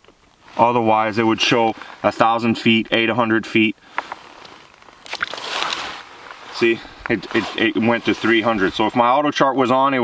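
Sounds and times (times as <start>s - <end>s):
water and slush sloshing: 4.4s - 8.8s.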